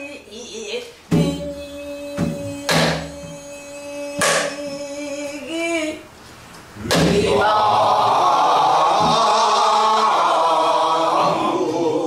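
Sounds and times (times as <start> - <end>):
woman singing long note: 0.0 - 6.0.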